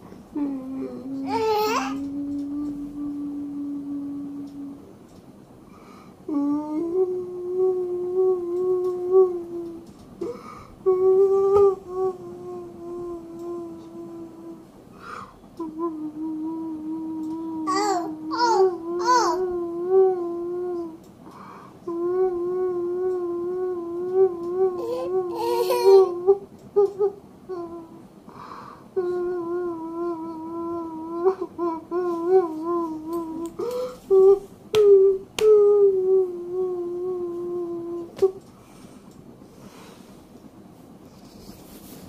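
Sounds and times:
person humming a steady note: 0:00.0 - 0:05.1, 0:06.2 - 0:28.2, 0:28.8 - 0:38.5.

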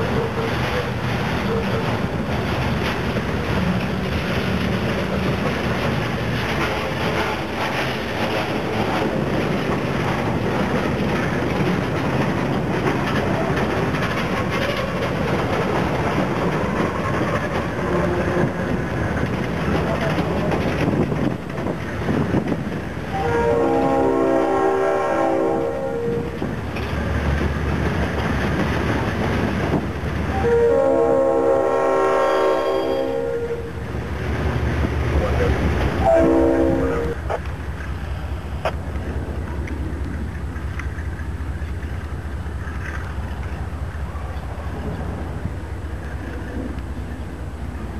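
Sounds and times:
train wheels on rails: 0:00.0 - 0:47.9
locomotive air horn blasts: 0:23.1 - 0:26.4, 0:30.3 - 0:33.7, 0:36.0 - 0:37.4.

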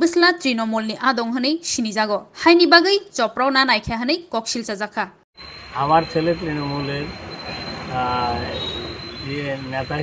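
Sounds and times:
steady high-pitched whine: 0:05.4 - 0:10.0
man speaking: 0:05.8 - 0:07.1, 0:07.9 - 0:10.0.

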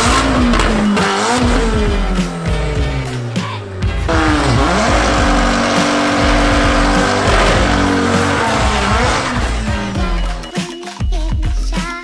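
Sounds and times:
car engine at high revs: 0:00.0 - 0:10.5
tyres squealing: 0:00.0 - 0:10.5
music: 0:00.0 - 0:12.0.

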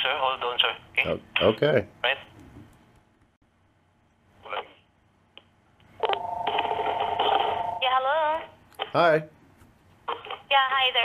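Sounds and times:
steady electronic phone tone: 0:06.0 - 0:07.8.

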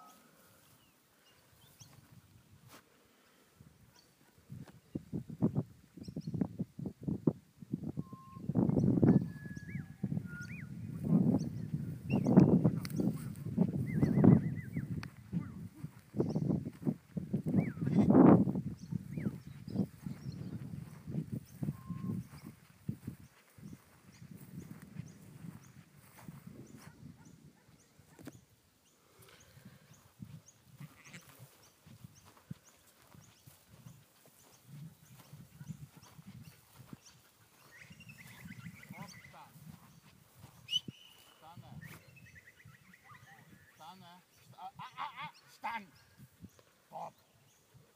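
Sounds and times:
sheep and lambs bleating: 0:17.7 - 0:18.1, 0:30.7 - 0:31.4.

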